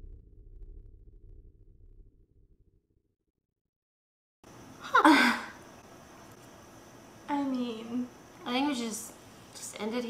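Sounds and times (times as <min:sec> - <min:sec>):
low rumbling drone: 0:00.0 - 0:03.2.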